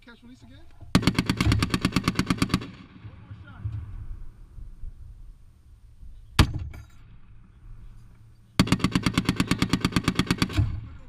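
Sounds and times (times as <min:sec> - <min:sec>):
machine gun fire: 0:00.9 - 0:03.5, 0:08.6 - 0:11.0.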